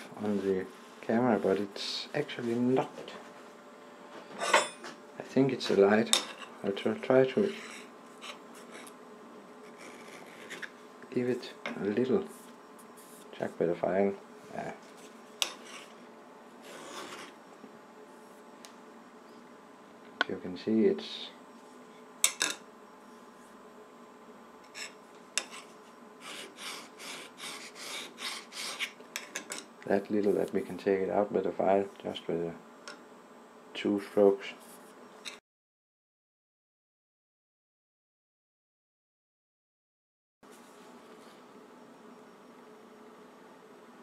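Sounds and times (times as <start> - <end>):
fingertip rubbing on steel: 15.4 - 16.0, 24.7 - 29.0.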